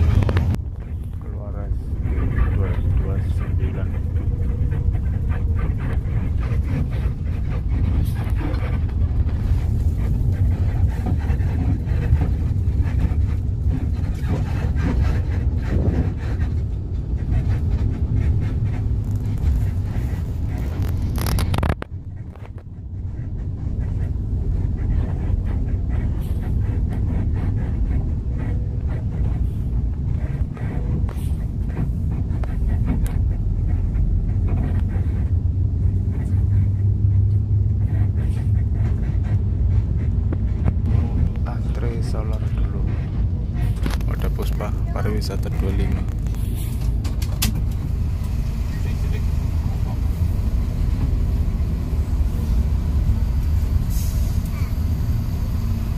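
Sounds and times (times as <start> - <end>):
bus engine and road noise: 0.0 - 55.9.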